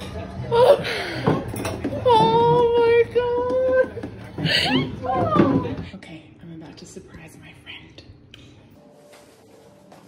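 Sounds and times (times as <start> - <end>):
woman whispering: 7.0 - 8.2.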